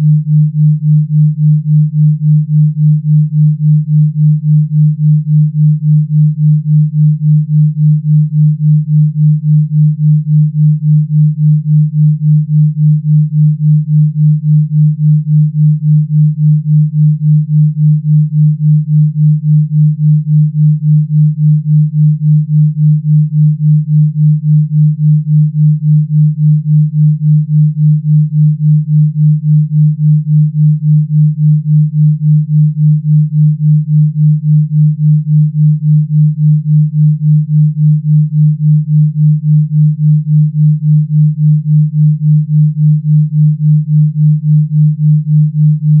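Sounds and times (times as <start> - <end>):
low pulsing sine tone: 0.0 - 46.0.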